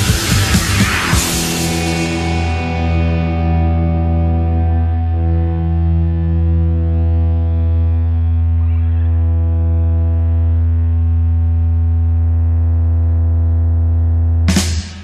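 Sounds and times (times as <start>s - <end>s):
distorted electric guitar chord: 0.0s - 15.0s.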